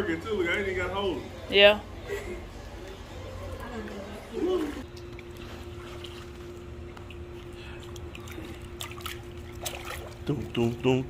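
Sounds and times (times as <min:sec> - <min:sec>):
steady low hum: 0:00.0 - 0:11.0
water lapping and dripping in pool: 0:03.4 - 0:11.0.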